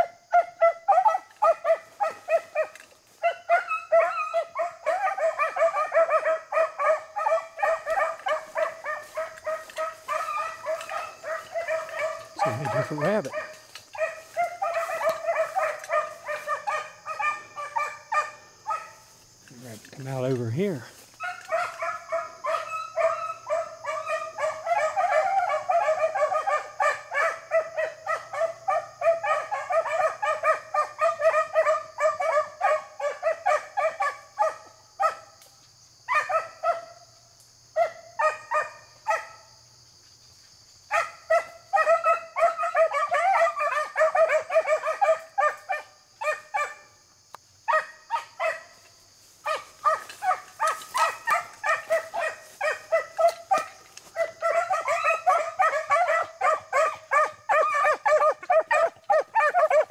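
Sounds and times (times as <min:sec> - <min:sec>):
hounds baying: 0:00.0 - 0:35.4, 0:36.0 - 0:39.6, 0:40.8 - 0:59.9.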